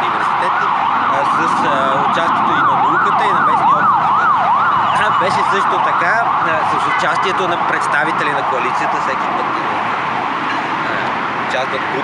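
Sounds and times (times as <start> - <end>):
emergency siren wailing: 0.0 - 12.0.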